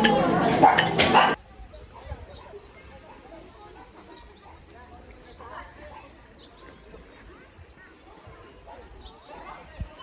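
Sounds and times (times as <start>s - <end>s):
cutlery clinking on plates: 0.0s - 1.4s
voices: 0.0s - 10.0s.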